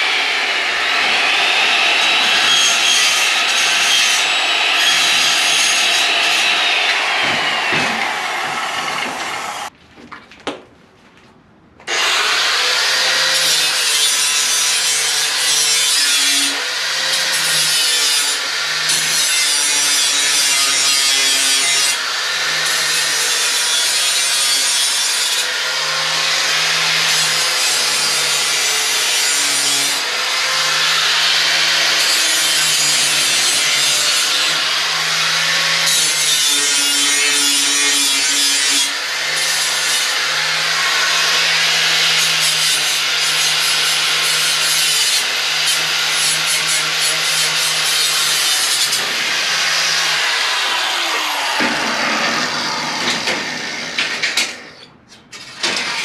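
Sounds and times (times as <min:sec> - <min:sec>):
power tool cutting sheet metal: 0:00.0 - 0:09.7, 0:11.9 - 0:56.0.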